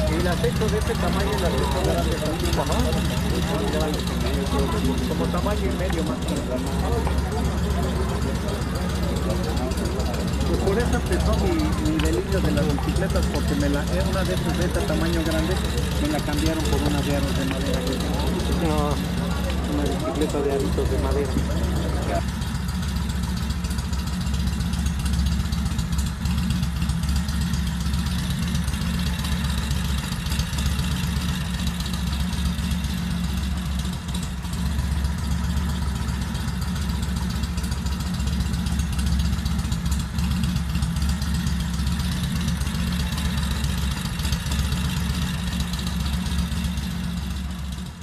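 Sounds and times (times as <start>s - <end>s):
engine idling: 0.0s - 48.0s.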